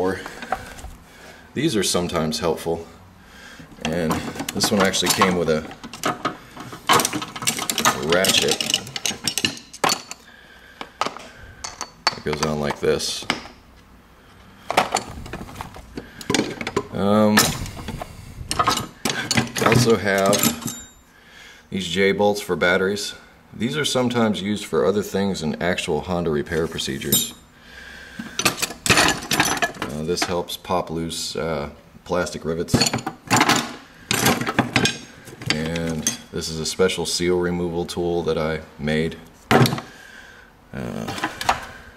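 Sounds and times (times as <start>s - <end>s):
metal hand tools clinking in drawer: 3.8s - 10.2s, 11.0s - 13.6s, 18.5s - 21.0s, 27.1s - 27.4s, 28.3s - 30.3s, 32.7s - 36.3s.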